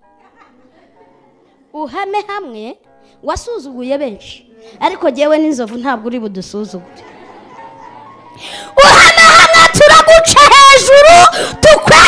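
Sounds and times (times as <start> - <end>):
woman breathing: 8.3 - 8.8, 11.3 - 11.6
woman singing loudly: 8.8 - 12.0.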